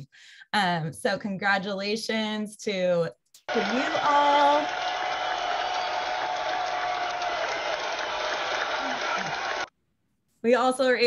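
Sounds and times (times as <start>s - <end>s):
crowd applause: 3.5s - 9.7s.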